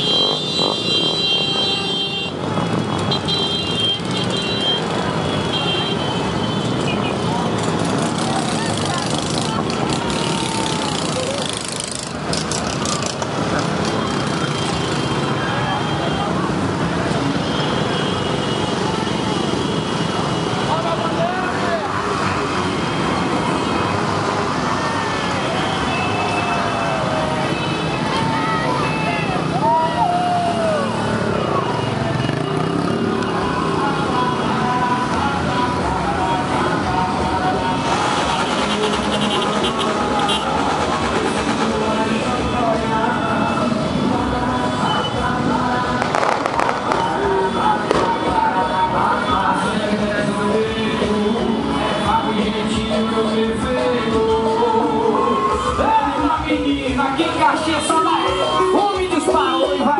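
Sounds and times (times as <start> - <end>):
motorcycles and cars engine noise: 0.0 - 59.9
voices shouting: 24.6 - 34.4.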